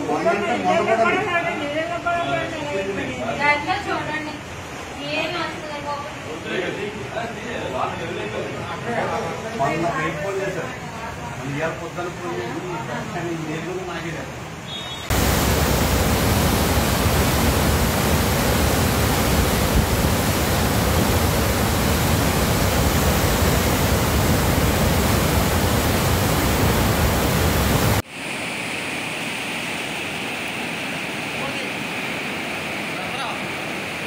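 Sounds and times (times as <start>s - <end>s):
floodwater flowing across road: 10.8s - 34.0s
water rushing through dam gates: 14.0s - 34.0s.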